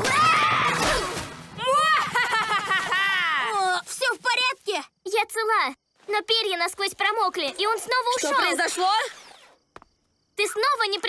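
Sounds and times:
cartoon child's high-pitched voice: 3.5 - 9.2, 10.4 - 11.0.

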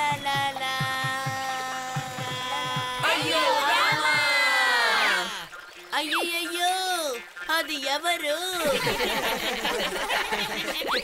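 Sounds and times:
quick low drum pattern: 0.0 - 4.7.

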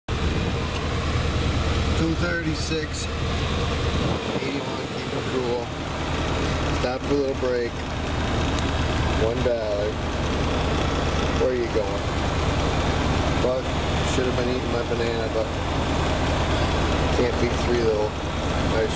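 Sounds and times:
diesel truck engine rumbling: 0.1 - 18.9.

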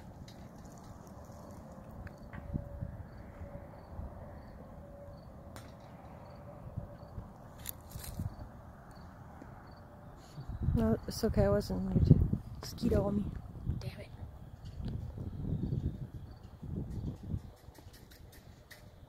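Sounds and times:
wind rumble: 0.0 - 19.0.

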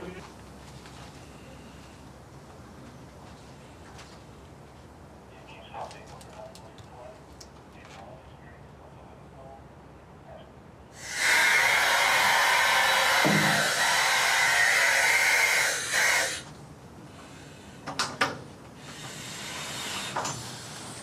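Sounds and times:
loud steady hiss: 10.9 - 18.0, 18.8 - 21.0.

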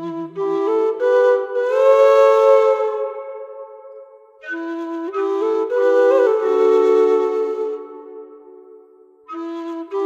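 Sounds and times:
low whistle long note: 0.0 - 10.0.

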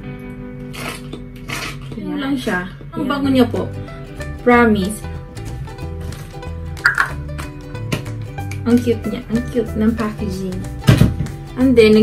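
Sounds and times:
background music sustained tones: 0.0 - 12.0.

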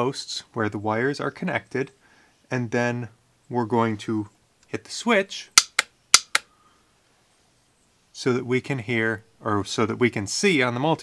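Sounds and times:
sharp clicks: 5.6 - 6.5.

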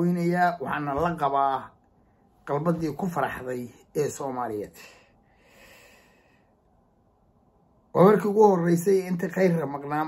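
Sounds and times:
faint breath: 4.8 - 6.8.

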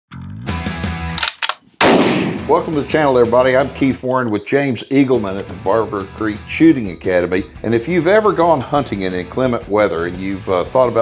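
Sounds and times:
loud shot-like crack: 1.8 - 2.7
sharp hits: 1.8 - 2.9.

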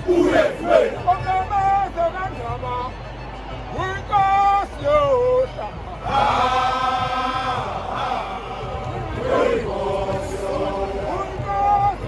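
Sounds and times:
loud group shouts: 0.0 - 1.0
men chanting a war cry: 0.0 - 1.1, 6.0 - 12.0.

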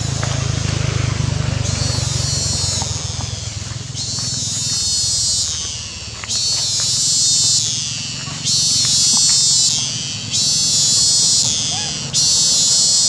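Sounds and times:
cicadas buzzing: 0.0 - 13.0.

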